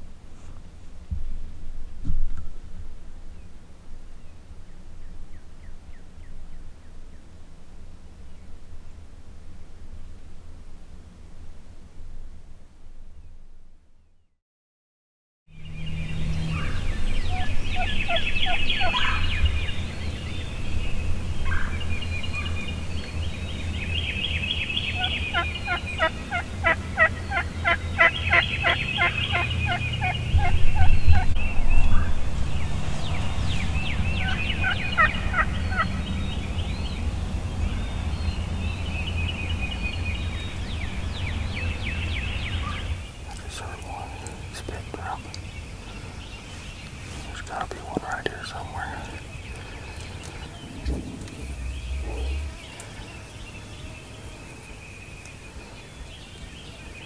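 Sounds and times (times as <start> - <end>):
steady low rumble: 15.6 - 54.5
turkey gobbling: 17.3 - 19.4, 25.0 - 31.3, 34.2 - 36.0, 49.5 - 53.0.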